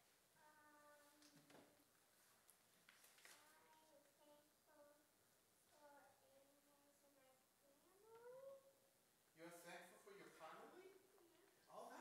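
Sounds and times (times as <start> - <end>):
young child speaking: 0.4 - 1.9, 3.3 - 8.9.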